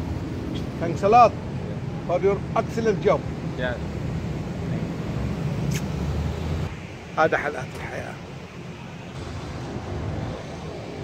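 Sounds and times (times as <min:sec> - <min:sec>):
sharp click: 0:05.7 - 0:06.0
vehicle engine rumbling: 0:07.8 - 0:11.0.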